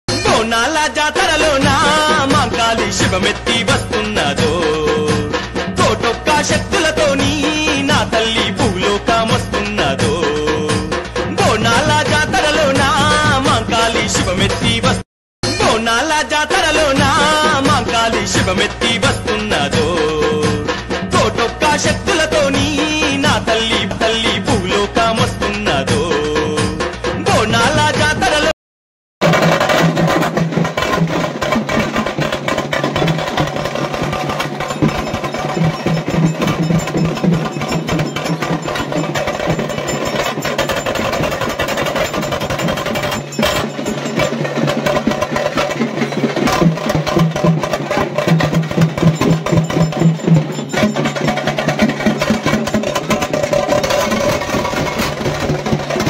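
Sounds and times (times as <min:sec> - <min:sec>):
loud fast drumming: 0:00.1 - 0:28.5, 0:29.2 - 0:56.0.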